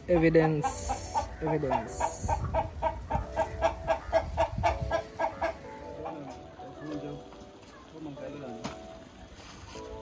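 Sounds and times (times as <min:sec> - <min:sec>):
poultry clucking: 0:00.0 - 0:08.5.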